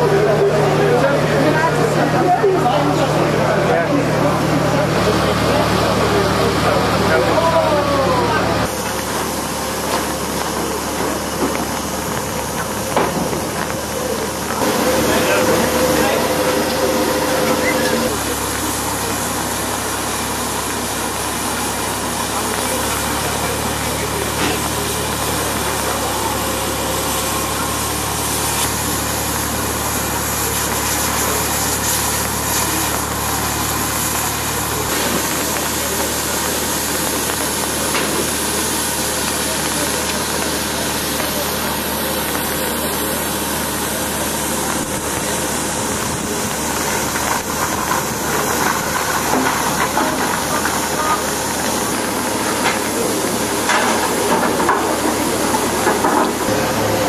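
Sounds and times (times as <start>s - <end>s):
steam locomotive hissing: 0.0s - 57.0s.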